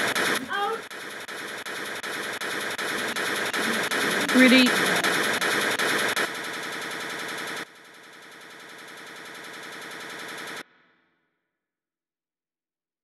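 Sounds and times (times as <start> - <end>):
rapid machine-gun fire: 0.0 - 10.7.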